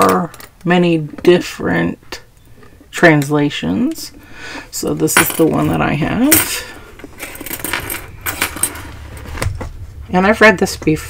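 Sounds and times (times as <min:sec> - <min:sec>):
keys jingling: 0:05.2 - 0:09.3
keys sliding across a desk: 0:06.4 - 0:09.4.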